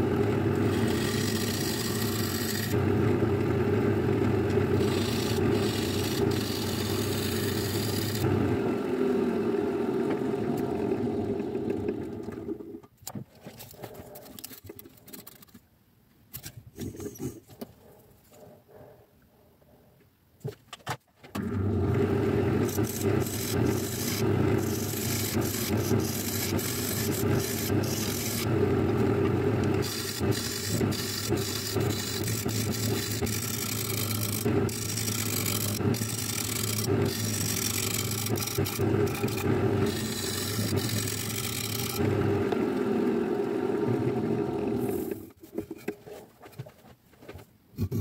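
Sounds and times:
lathe motor humming: 0:00.0 - 0:12.6, 0:21.4 - 0:45.2
turning tool scraping wood: 0:00.5 - 0:02.8, 0:04.4 - 0:08.3, 0:21.4 - 0:42.7.

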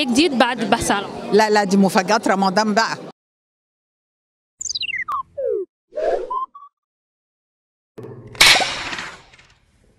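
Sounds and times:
electronic blips stepping down: 0:04.6 - 0:06.7.

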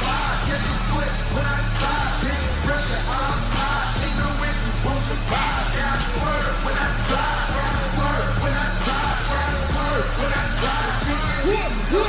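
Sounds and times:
hip-hop music with heavy bass: 0:00.0 - 0:12.0
rapper shouting into microphone: 0:00.0 - 0:12.0.

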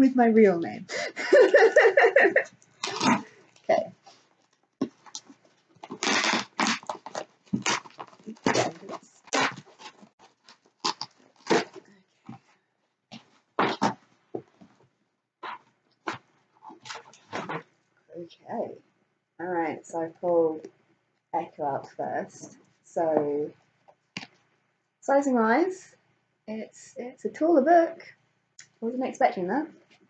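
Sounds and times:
packaging ripping and crackling: 0:04.4 - 0:11.9.

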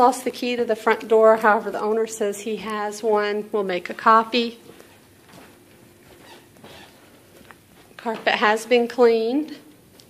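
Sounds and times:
footsteps on carpet: 0:04.6 - 0:08.3.

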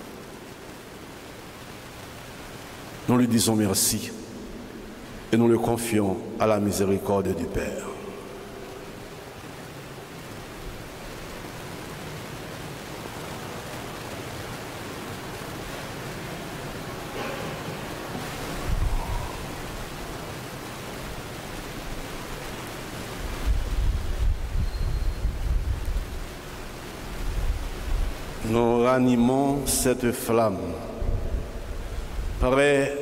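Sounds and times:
steady background hiss: 0:00.0 - 0:33.0.

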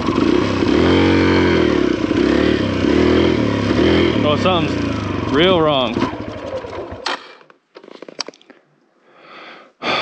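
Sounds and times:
dirt bike engine stalling: 0:00.0 - 0:08.4.

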